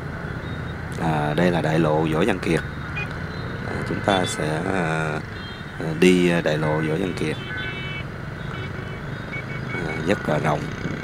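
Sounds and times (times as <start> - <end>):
dense motorbike traffic: 0.0 - 11.0
wind: 0.0 - 11.0.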